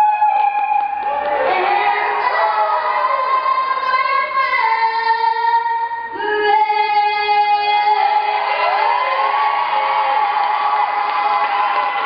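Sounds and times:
girl singing anthem solo: 1.1s - 9.3s.

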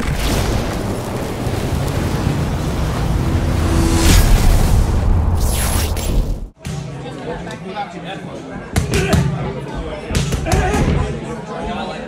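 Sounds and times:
low rumbling rushing sound effect: 1.0s - 6.6s.

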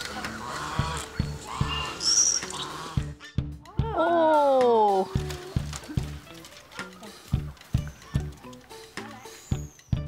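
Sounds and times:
geese honking: 0.0s - 3.2s
background music with steady beat: 0.0s - 10.0s.

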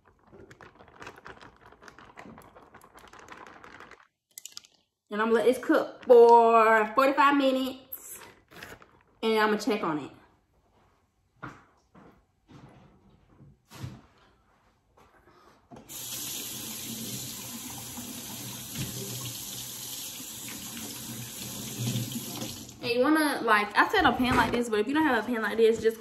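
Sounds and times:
faucet water running into sink: 15.9s - 22.8s.

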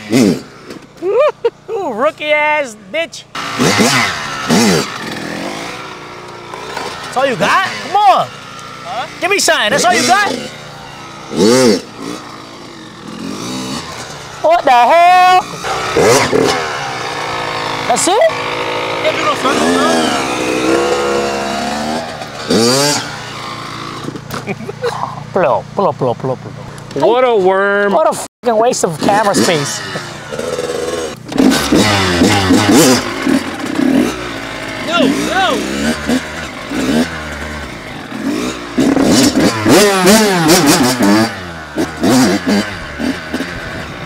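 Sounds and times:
dirt bike engine revving: 0.0s - 1.7s, 2.4s - 44.0s
people laughing: 1.0s - 1.8s, 24.4s - 25.2s.

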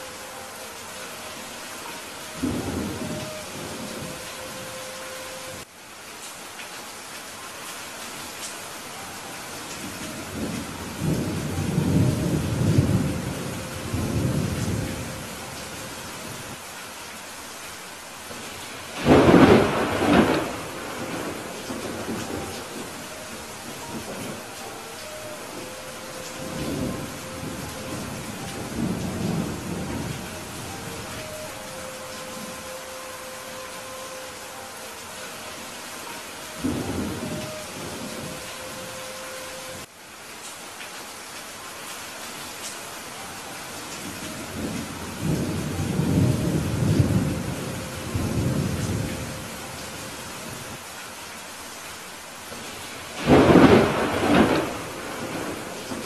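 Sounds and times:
steady rain falling: 0.0s - 56.0s
thunder rumbling: 9.9s - 16.6s, 19.0s - 34.0s, 36.0s - 38.9s, 53.2s - 56.0s.

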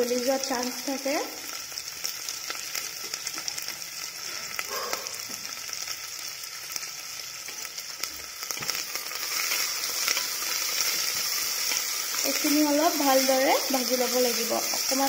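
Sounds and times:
onions sizzling in hot oil: 0.0s - 15.0s
small crackles of frying: 0.0s - 15.0s.

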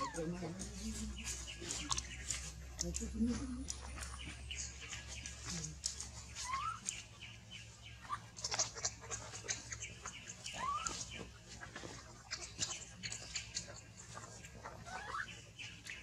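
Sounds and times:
baby monkey squeaky calls: 0.0s - 0.5s, 6.2s - 7.2s, 8.0s - 16.0s
crackle of dry leaves: 0.0s - 16.0s.

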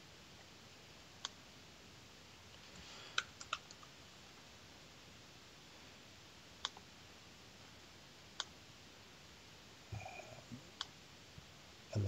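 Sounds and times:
computer mouse clicks: 1.2s - 1.4s, 2.5s - 3.9s, 6.6s - 6.9s, 8.4s - 8.6s.

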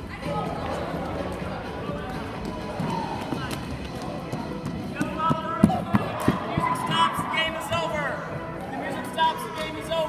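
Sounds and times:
balls bouncing on gym floor: 2.4s - 8.0s
feet running on gym floor: 2.4s - 8.6s.

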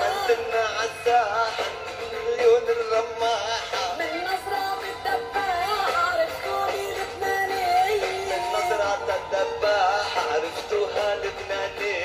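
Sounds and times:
person singing into microphone: 0.0s - 12.0s.

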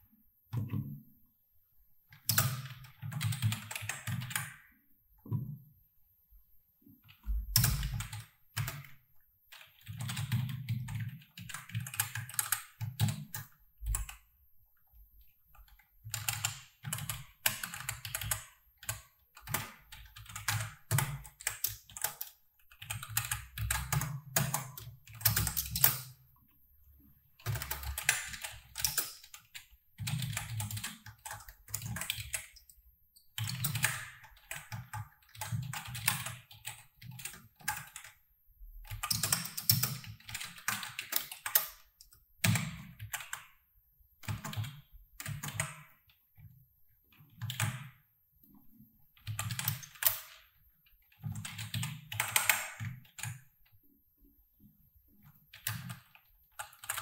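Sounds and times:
typing on computer keyboard: 2.1s - 4.6s, 7.0s - 14.2s, 15.5s - 26.2s, 27.4s - 32.8s, 33.4s - 38.2s, 38.8s - 43.5s, 44.2s - 46.2s, 47.1s - 48.0s, 49.2s - 53.5s, 55.2s - 57.0s.

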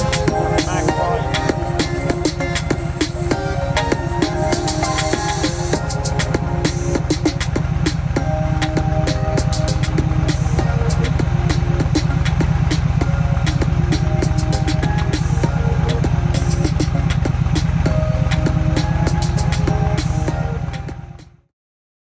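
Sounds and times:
low engine throb: 0.0s - 21.4s
music with drum beat and melody: 0.0s - 21.4s.

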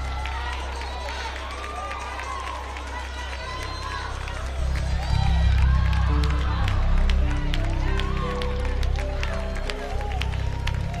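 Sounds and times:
hand claps: 0.0s - 11.0s
heavy bass: 3.8s - 11.0s
keyboard chords: 3.8s - 11.0s.

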